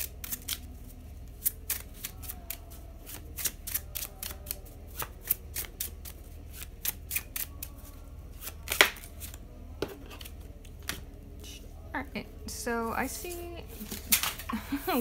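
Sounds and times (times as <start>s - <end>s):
cards being shuffled by hand: 8.4s - 11.0s.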